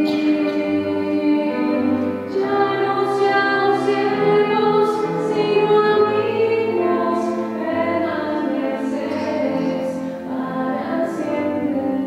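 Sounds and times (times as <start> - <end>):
choir singing: 0.0 - 12.0.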